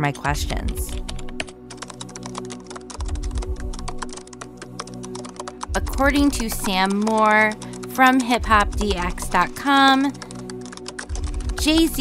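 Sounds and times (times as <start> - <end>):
background music with held chords: 0.0 - 12.0.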